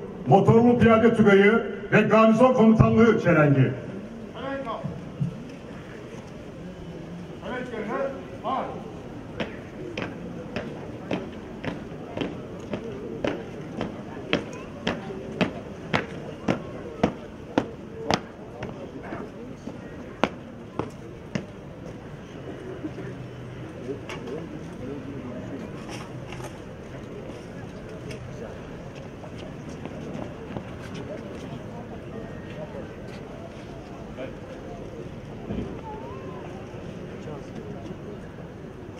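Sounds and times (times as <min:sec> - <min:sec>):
murmur of voices: 0:00.0 - 0:38.9.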